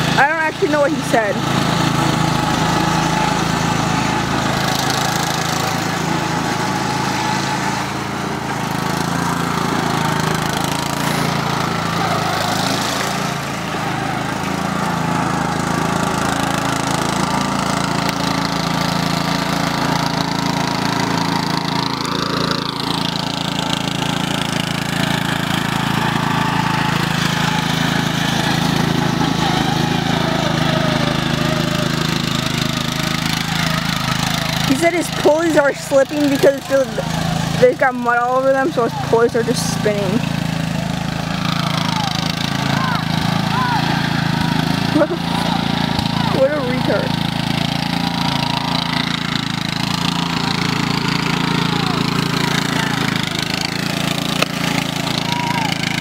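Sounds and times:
riding lawn mower engine: 0:00.0 - 0:56.0.

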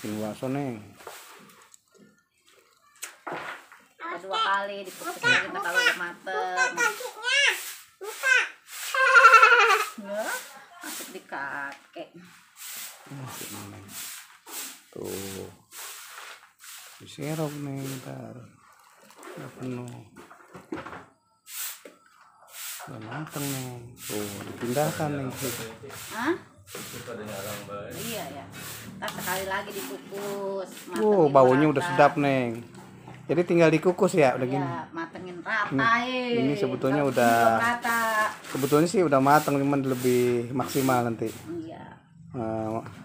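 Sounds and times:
brief hiss: 0:21.5 - 0:21.9.

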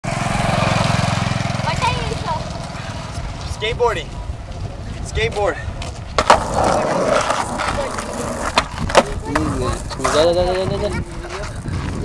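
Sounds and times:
voices: 0:01.2 - 0:12.0.

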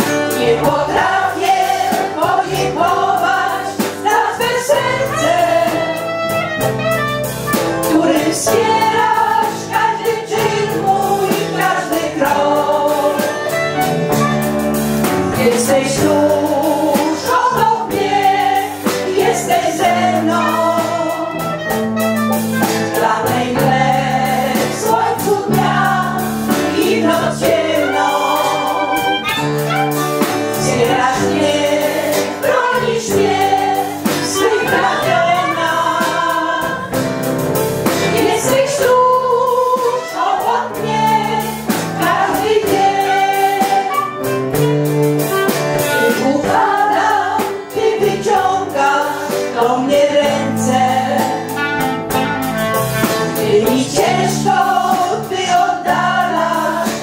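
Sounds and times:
choir singing: 0:00.0 - 0:06.6, 0:07.8 - 0:14.0, 0:15.2 - 0:21.7, 0:22.5 - 0:37.1, 0:37.8 - 0:44.7, 0:45.3 - 0:51.8, 0:53.1 - 0:57.0
accompaniment with held bass notes: 0:00.0 - 0:57.0.

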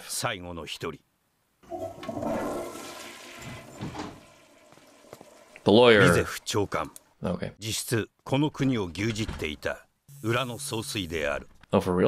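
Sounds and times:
toilet flushing: 0:01.6 - 0:07.0.

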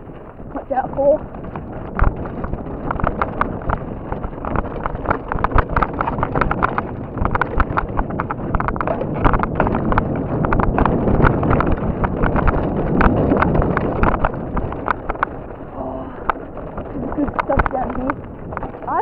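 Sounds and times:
mountain bike rattling over rocks: 0:00.0 - 0:19.0
steady rushing noise: 0:00.0 - 0:19.0.

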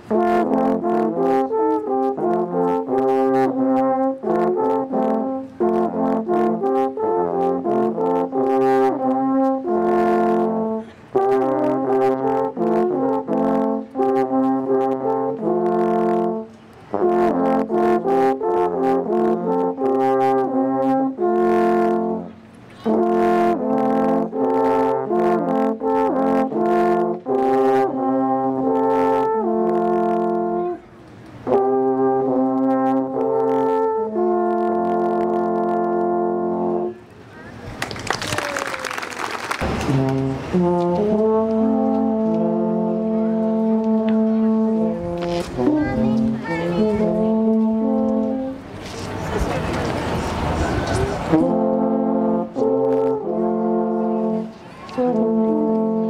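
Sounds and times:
alphorns playing in harmony: 0:00.0 - 0:37.0, 0:39.6 - 0:48.7, 0:51.2 - 0:56.0.

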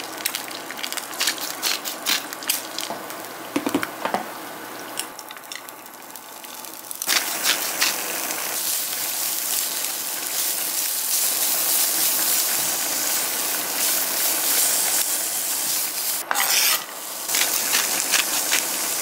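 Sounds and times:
carrots sizzling in oil: 0:05.4 - 0:19.0.

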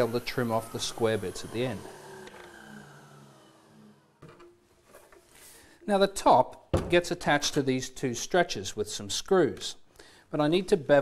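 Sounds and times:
saw blade whine spinning down: 0:00.0 - 0:04.2.

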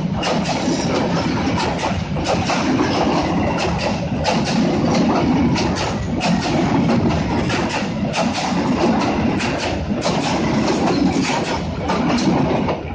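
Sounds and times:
train rumbling past: 0:00.0 - 0:12.9
wheels clicking over rail joints: 0:00.0 - 0:12.9.

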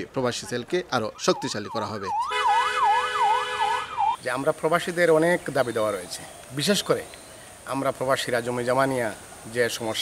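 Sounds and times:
police siren yelp: 0:01.2 - 0:04.2.

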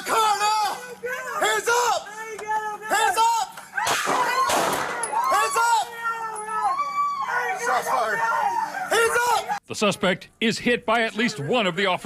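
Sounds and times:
people screaming and yelling: 0:00.0 - 0:09.7.

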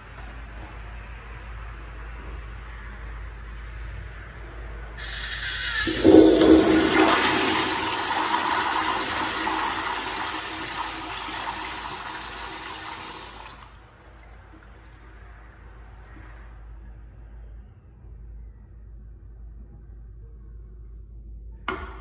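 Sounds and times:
flush valve hiss: 0:05.0 - 0:13.7
toilet flushing: 0:05.0 - 0:15.1
faint wash of water: 0:05.9 - 0:15.2.

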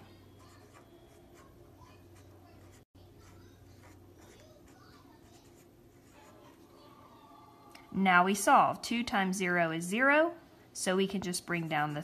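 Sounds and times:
pen scratching on paper: 0:00.4 - 0:01.6, 0:02.2 - 0:06.5.

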